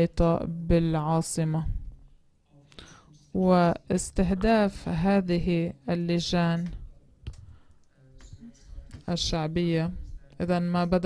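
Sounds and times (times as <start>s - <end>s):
faint microphone clicks: 6.6s - 7.6s.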